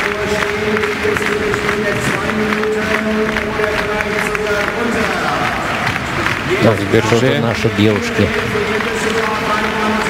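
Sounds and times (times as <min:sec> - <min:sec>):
crowd noise in indoor arena: 0:00.0 - 0:10.0.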